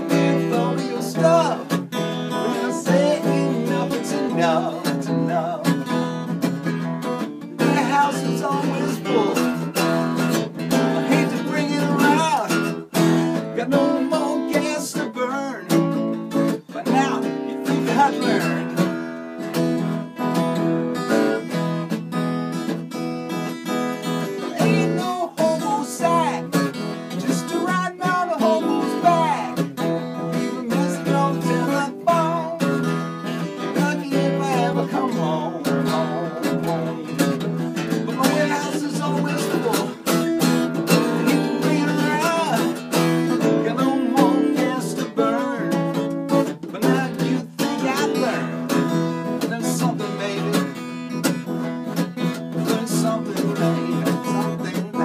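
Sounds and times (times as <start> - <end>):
acoustic guitar strumming blues: 0.0 - 55.0.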